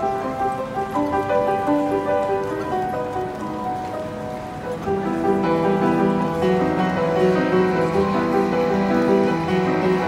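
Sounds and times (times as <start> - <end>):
upright piano playing: 0.0 - 10.0.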